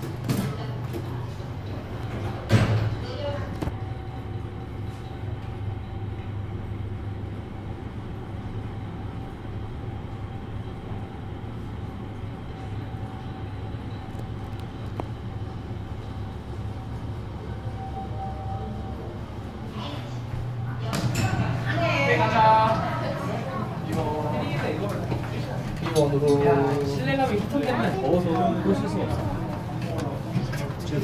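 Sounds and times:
elevator hum and rumble: 0.0s - 31.0s
faint steady whine: 3.7s - 20.8s.

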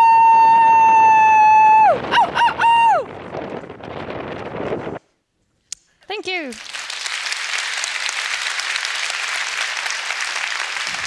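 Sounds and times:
wind noise on microphone: 0.0s - 5.6s, 10.7s - 11.0s.

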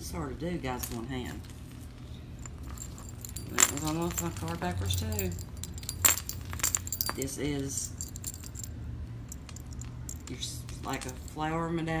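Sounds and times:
metal necklace clinking: 2.3s - 12.0s.

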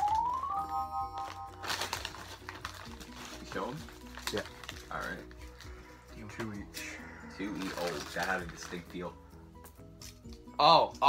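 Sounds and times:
plastic chip bag crinkling: 0.0s - 6.8s, 7.4s - 9.1s
background music: 0.0s - 11.0s.

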